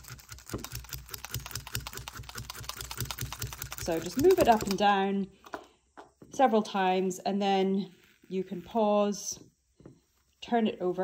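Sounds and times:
felting needles clicking rapidly: 0.0 - 5.0.

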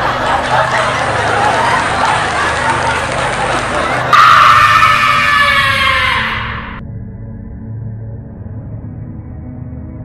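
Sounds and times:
low droning music: 0.0 - 10.0.

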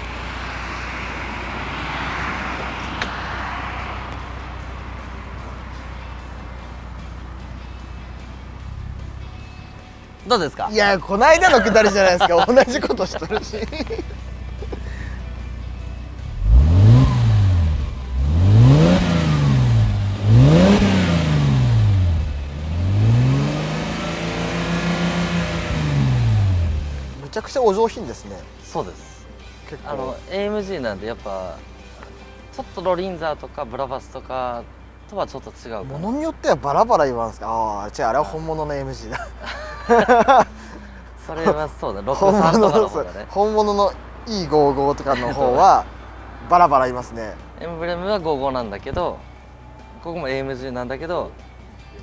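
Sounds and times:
car passing on road: 0.0 - 28.5, 38.6 - 52.0.

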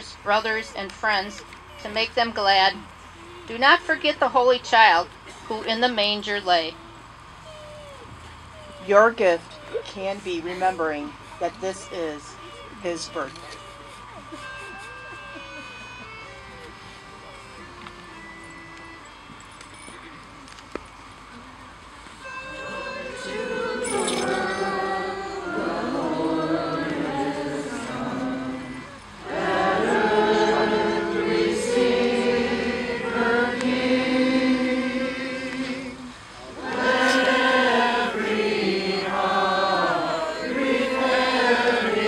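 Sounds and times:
onlookers and children talking: 8.0 - 14.3
group singing a carol: 22.2 - 42.0.

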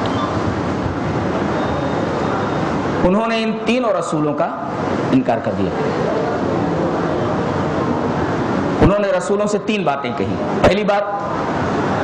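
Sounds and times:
loud rushing noise: 0.0 - 12.0.

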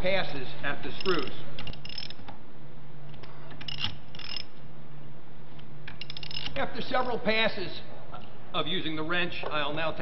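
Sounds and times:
ratchet wrench clicking: 1.0 - 2.2, 3.6 - 4.5, 5.9 - 6.6.

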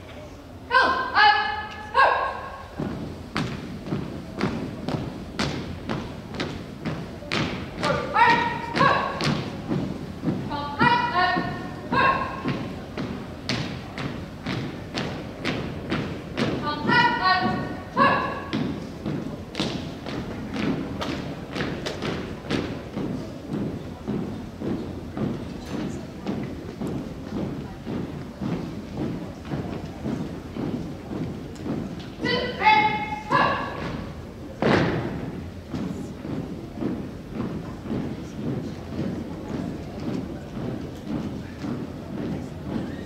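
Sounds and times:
boots marching on wooden floor: 2.7 - 43.0.

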